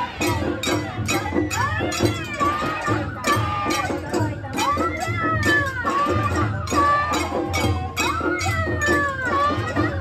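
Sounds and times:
drum and bell strokes: 0.0s - 10.0s.

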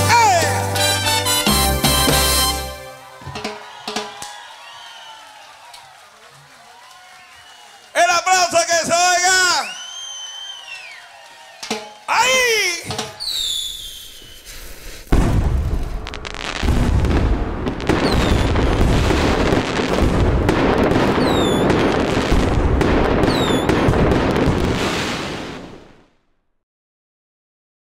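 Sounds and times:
high firework whistles: 9.6s - 16.7s, 17.7s - 20.2s, 20.8s - 22.5s, 23.2s - 24.0s
fireworks bursting and crackling: 11.6s - 26.2s.

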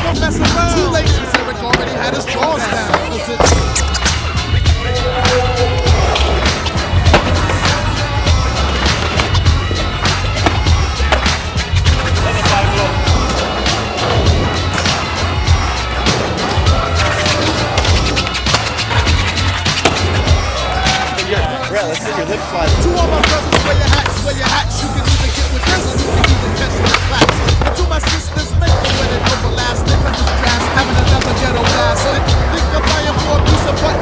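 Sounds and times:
music with heavy bass: 0.0s - 1.8s, 3.4s - 34.0s
skateboard clacks: 0.4s - 4.3s, 5.8s - 15.1s, 16.0s - 21.2s, 23.0s - 24.6s, 25.5s - 34.0s
skateboard wheels rolling: 5.1s - 21.7s.

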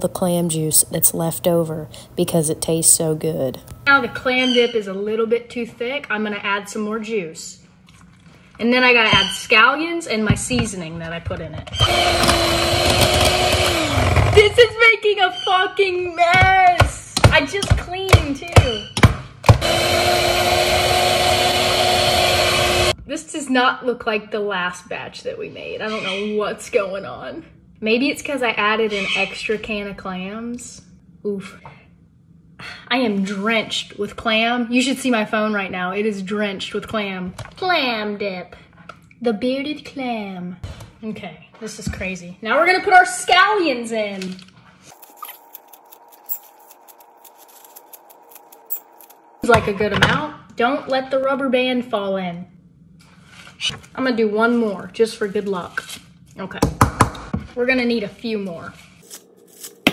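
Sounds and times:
electric hand mixer running: 11.8s - 14.4s, 19.5s - 23.0s
scissors snipping scallions: 59.0s - 59.9s.

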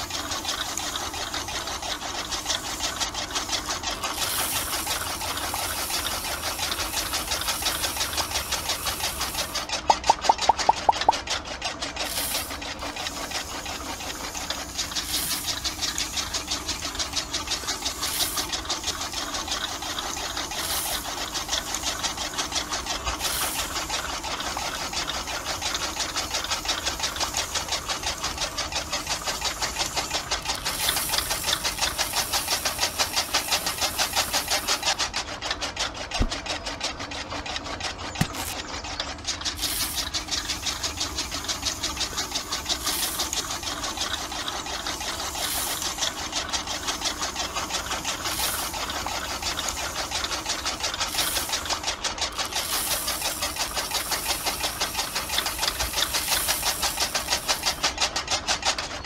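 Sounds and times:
loud mechanical ticks: 0.0s - 59.0s
small electric motor rattling: 0.0s - 59.0s.

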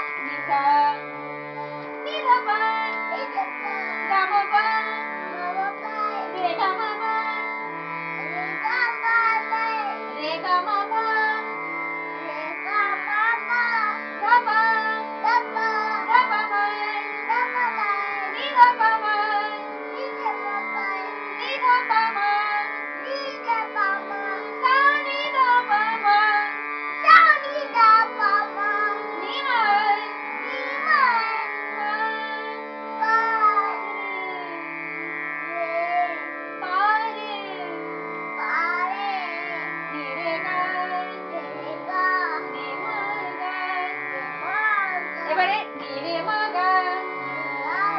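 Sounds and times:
harmonium chords: 0.0s - 47.9s
small child singing: 2.0s - 7.4s, 8.2s - 11.5s, 12.2s - 34.6s, 35.5s - 37.8s, 38.4s - 47.9s.

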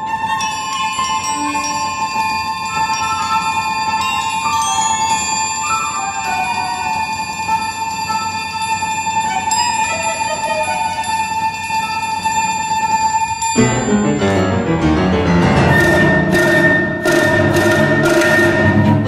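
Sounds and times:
chamber ensemble playing: 0.0s - 7.1s, 13.6s - 19.0s
sharp struck accents: 13.6s - 17.9s
long high held note: 13.6s - 18.5s.

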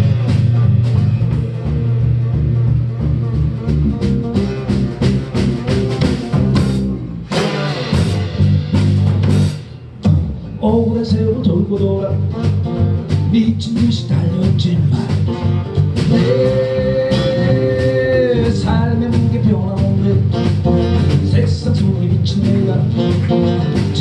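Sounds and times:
acoustic and electric guitars: 0.0s - 24.0s
drum kit steady beat: 0.0s - 24.0s.

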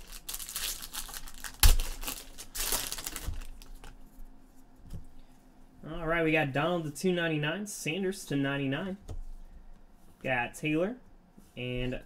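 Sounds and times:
foil wrapper crinkling: 0.0s - 4.0s.

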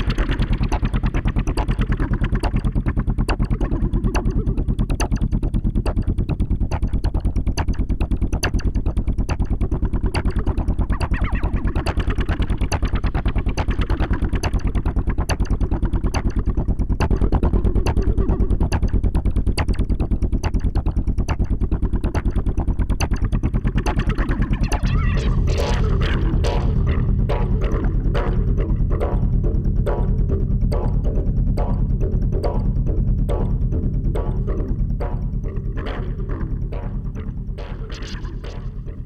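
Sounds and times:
fast ticks: 0.0s - 24.9s
pulsing synth bass sequence: 0.0s - 39.0s.

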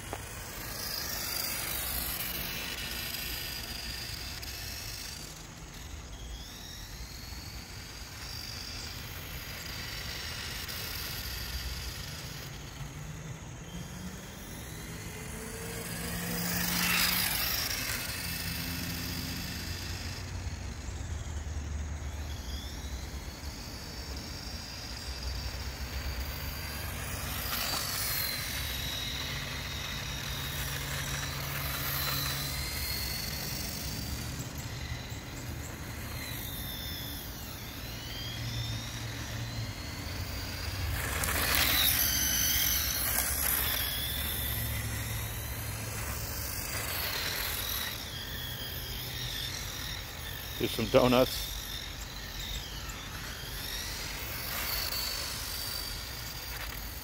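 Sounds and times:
electric motor whine: 0.0s - 57.0s.

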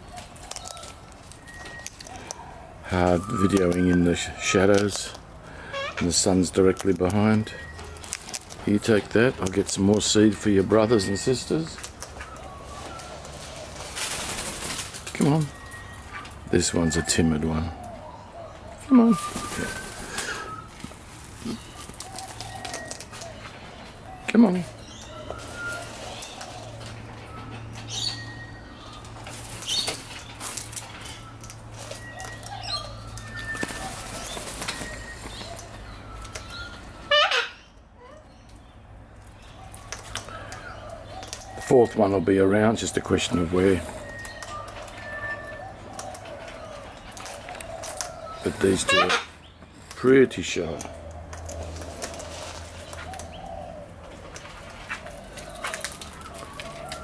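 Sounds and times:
soft low bird calls: 0.0s - 57.0s
bird wings flapping: 13.1s - 15.3s, 19.1s - 21.0s, 33.4s - 35.6s.

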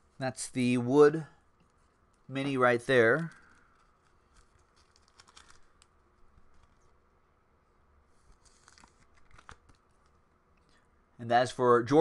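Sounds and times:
trading cards rustling and clicking: 1.6s - 7.0s, 8.2s - 10.2s.

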